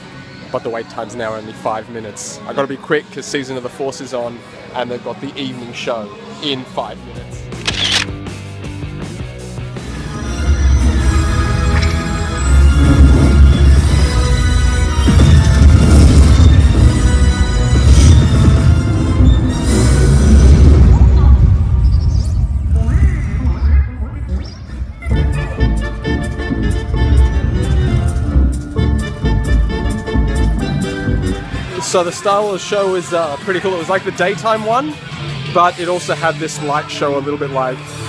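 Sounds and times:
music with heavy bass: 8.0 - 21.2, 25.1 - 31.8.

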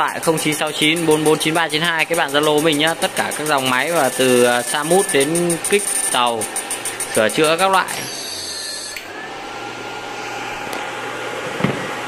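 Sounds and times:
cooling fans rushing: 0.0 - 12.0
thin electronic whine: 0.0 - 12.0.

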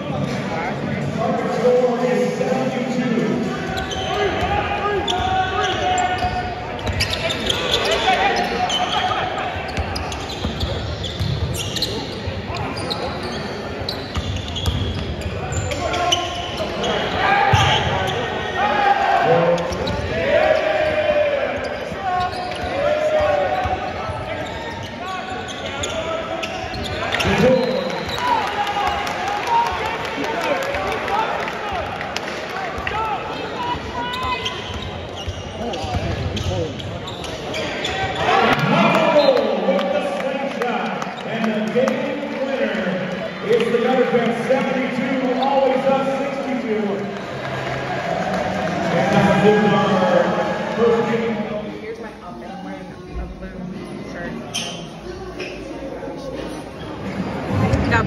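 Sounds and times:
shouts and chatter: 1.1 - 14.3, 15.4 - 53.4.

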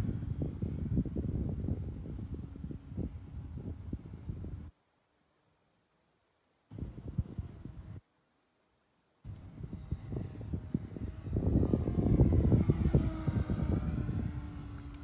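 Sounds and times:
model plane motor and propeller: 0.0 - 4.7, 6.8 - 8.0, 9.2 - 15.0.

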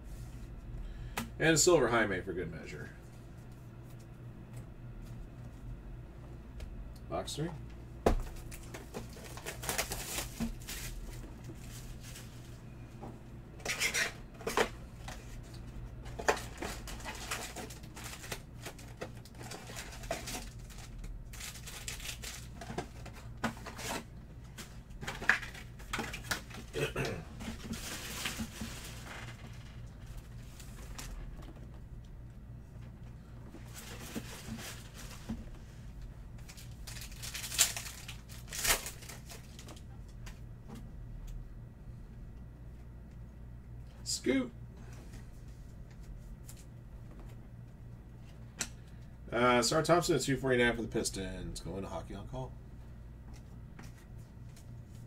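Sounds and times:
crinkling and rustling of packs: 8.2 - 12.5, 13.7 - 31.7, 33.6 - 35.6, 36.4 - 39.9
plastic shrink-wrap tearing: 9.1 - 11.0, 16.7 - 22.6, 36.5 - 39.8
pack wrapper tearing open: 36.8 - 39.8.

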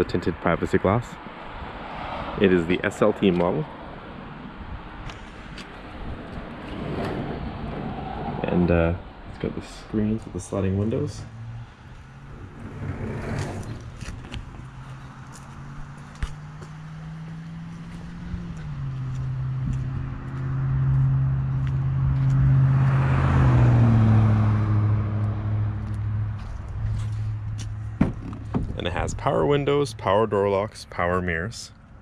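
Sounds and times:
vehicle engine humming: 2.4 - 30.6.

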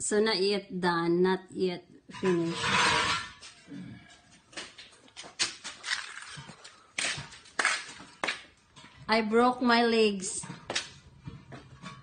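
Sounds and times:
footsteps: 2.3 - 9.2, 10.3 - 12.0
handling knocks and scuffs: 4.4 - 9.0.

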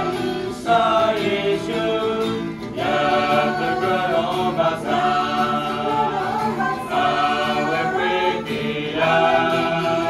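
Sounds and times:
acoustic guitar: 0.0 - 10.0
mixed choir singing a hymn: 0.0 - 10.0.

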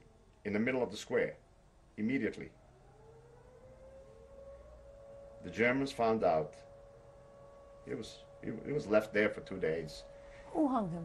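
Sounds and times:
faint rising tone: 2.0 - 11.0.

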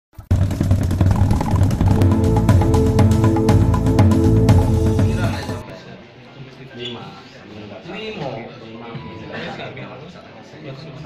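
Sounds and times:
intro music: 0.3 - 5.6
rumbling engine-like sting: 0.6 - 5.6.

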